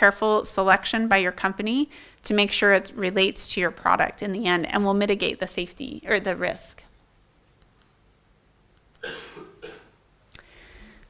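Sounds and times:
person coughing: 9.0 - 10.0.

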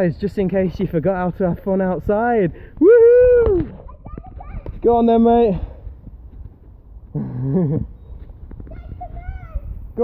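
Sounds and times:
child's high-pitched call: 8.6 - 9.9.

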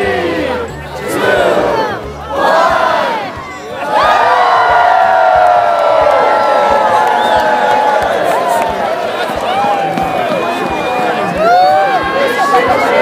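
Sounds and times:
crowd cheering: 0.0 - 13.0
crowd shouting together: 0.0 - 13.0.

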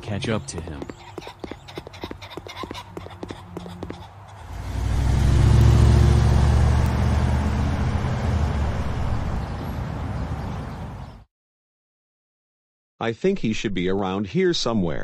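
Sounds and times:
running footsteps: 0.0 - 4.4
car engine pulling away: 4.4 - 10.7.

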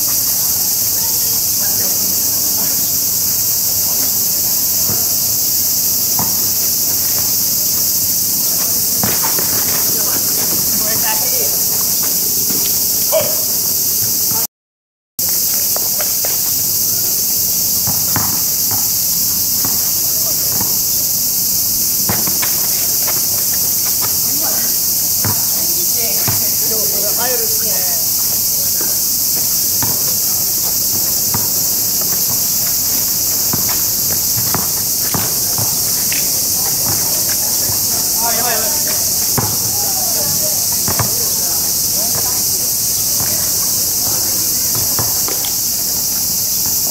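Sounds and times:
basketball bouncing on asphalt: 0.0 - 12.9, 15.2 - 46.9
distant voices: 0.0 - 13.6, 22.0 - 46.8
high-pitched insect chorus: 0.0 - 14.5, 15.2 - 46.9.

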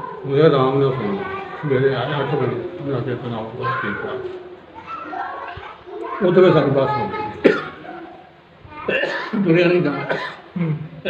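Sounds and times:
elderly man coughing: 7.4 - 7.8, 8.9 - 10.9.

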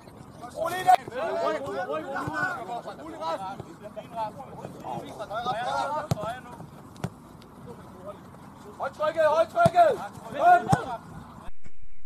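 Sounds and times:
football kicked thuds: 6.0 - 6.4, 10.6 - 10.9.

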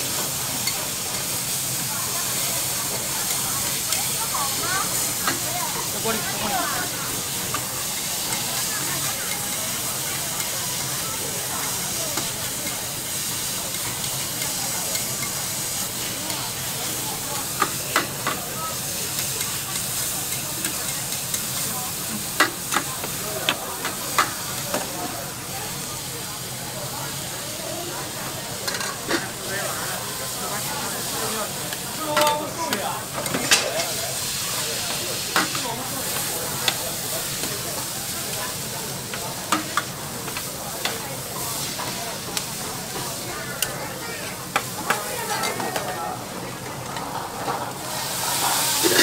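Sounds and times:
vegetables sizzling on a griddle: 0.0 - 49.0
metal spatulas scraping: 48.7 - 49.0.

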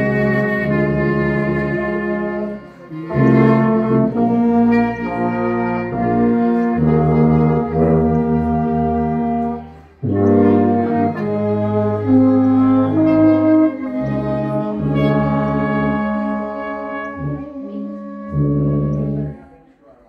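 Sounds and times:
ensemble playing slow chords: 0.0 - 19.6.

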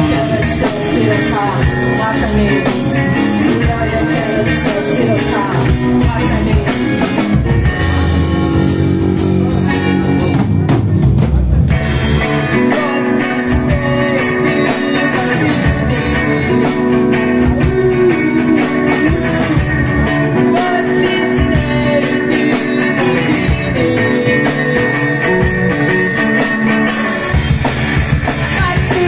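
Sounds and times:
woman singing: 0.0 - 7.2, 12.5 - 25.9, 28.5 - 29.0
live band playing: 0.0 - 29.0.

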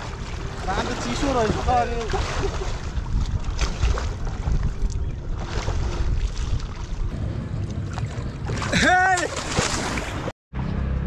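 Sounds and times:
lake water lapping: 0.0 - 10.3
water splashes: 0.0 - 10.3
wind buffeting microphone: 0.0 - 10.3.

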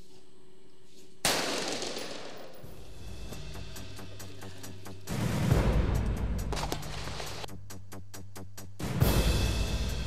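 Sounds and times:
gunshot: 1.2 - 2.7.

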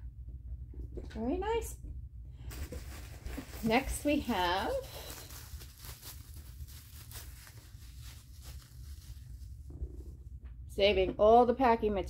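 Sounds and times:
plastic packing wrap crinkling: 2.4 - 9.7.

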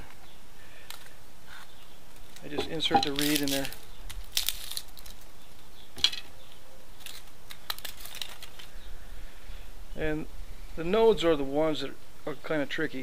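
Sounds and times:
dry reeds crinkling and clicking: 0.8 - 8.8.

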